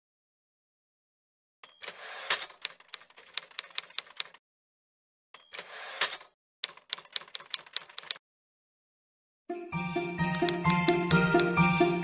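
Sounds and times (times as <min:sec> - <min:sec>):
typewriter bell: 0:01.6 - 0:02.3, 0:10.2 - 0:12.0
typewriter carriage return: 0:01.6 - 0:04.4
typewriter key strikes: 0:10.3 - 0:11.6.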